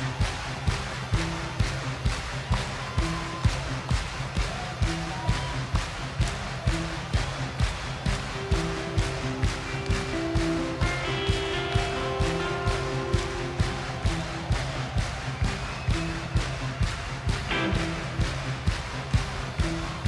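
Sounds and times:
bass: 0.0 - 20.0
drum beat: 0.0 - 20.0.

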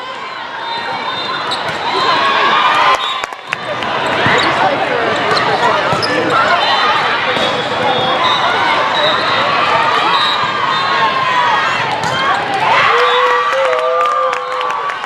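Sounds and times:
many overlapping voices: 0.0 - 13.0.

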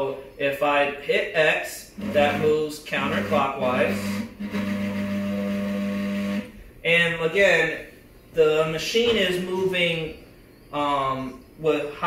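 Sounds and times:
stepper motor humming: 2.0 - 6.6.

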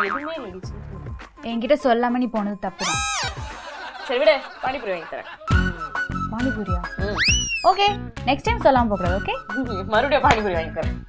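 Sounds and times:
people talking: 4.1 - 5.2, 6.3 - 10.9.

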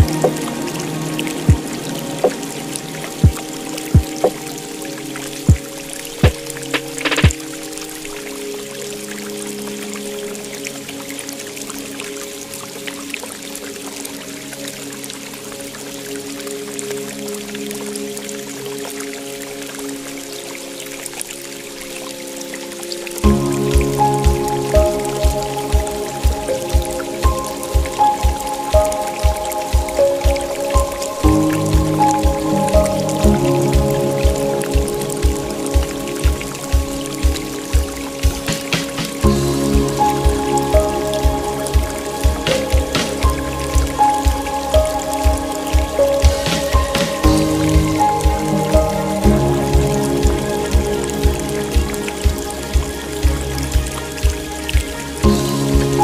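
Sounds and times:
calm instrumental music: 0.0 - 56.0
pouring water: 0.0 - 56.0.

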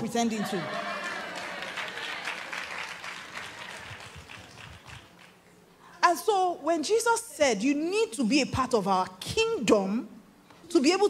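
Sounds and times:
audience applauding: 0.6 - 5.4.

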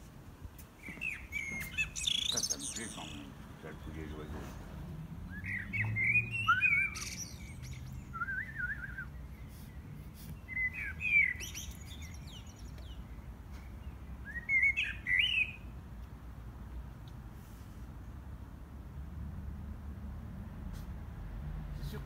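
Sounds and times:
songbird whistled chirps: 0.8 - 3.3, 5.3 - 15.7.

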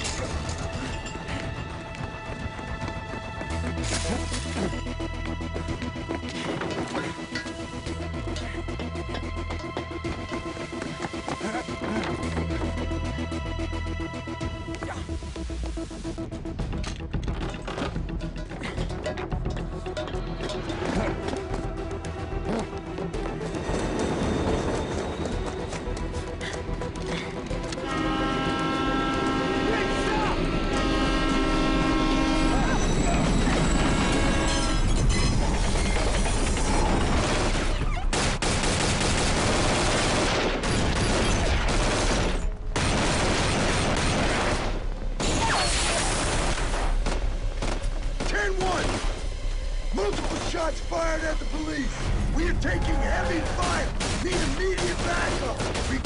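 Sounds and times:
action soundtrack music: 0.0 - 56.0
train horn blasts: 27.7 - 33.2
rapid gunfire: 36.7 - 44.9, 53.5 - 56.0.

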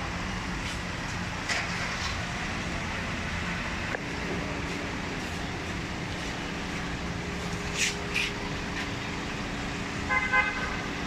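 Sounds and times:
street traffic: 0.0 - 11.0
vehicle engine running: 0.0 - 11.0
car horn toot: 10.1 - 10.9.

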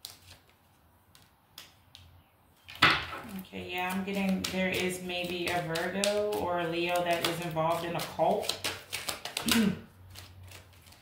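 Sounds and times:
paper cards flicking and tapping: 0.0 - 11.0.

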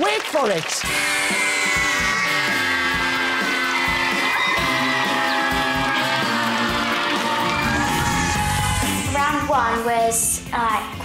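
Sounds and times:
synth music with a beat: 0.9 - 9.4.

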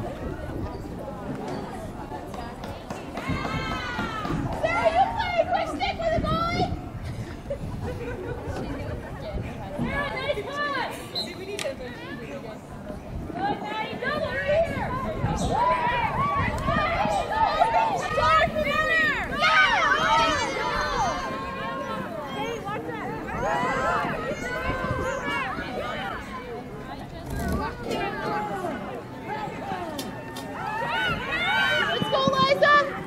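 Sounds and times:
indistinct voices outdoors: 0.0 - 33.0.

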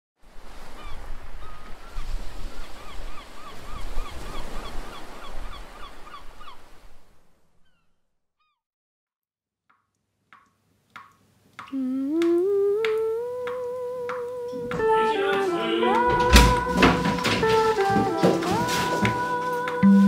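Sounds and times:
bird calling: 0.7 - 6.8, 7.6 - 8.6.

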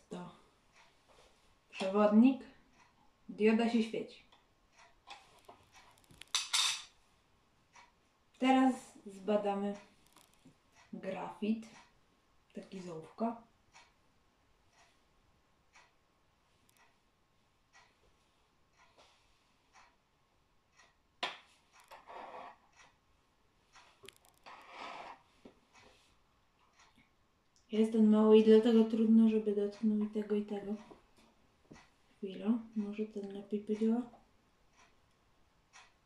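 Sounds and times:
plastic rubbing and scraping: 21.8 - 22.7, 24.2 - 25.3.

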